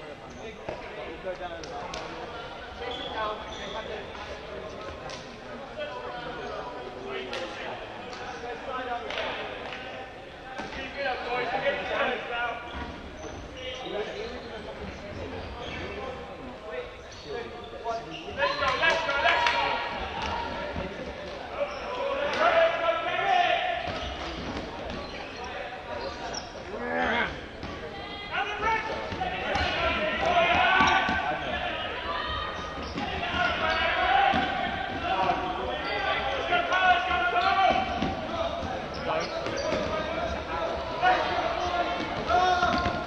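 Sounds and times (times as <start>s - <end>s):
players shouting in a sports hall: 0.0s - 43.0s.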